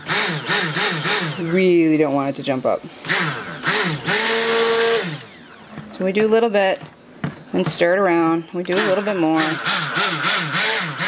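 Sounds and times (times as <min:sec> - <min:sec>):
stick blender whirring in liquid: 0:00.0 - 0:05.8, 0:08.7 - 0:11.0.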